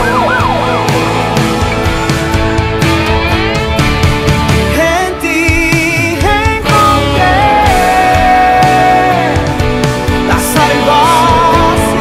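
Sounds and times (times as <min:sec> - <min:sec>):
ambulance siren yelp: 0:00.0 - 0:02.0
band music: 0:00.0 - 0:12.0.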